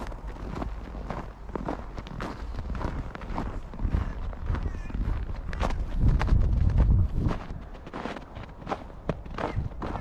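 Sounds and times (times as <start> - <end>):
footsteps crunching in snow: 0.0 - 10.0.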